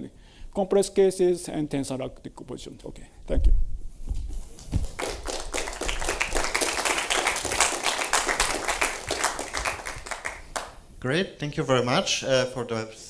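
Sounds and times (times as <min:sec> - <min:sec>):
audience applauding: 0:04.5 - 0:10.8.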